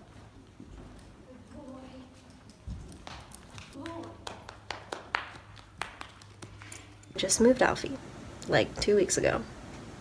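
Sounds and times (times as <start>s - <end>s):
muffled hoof steps: 0.0s - 3.8s.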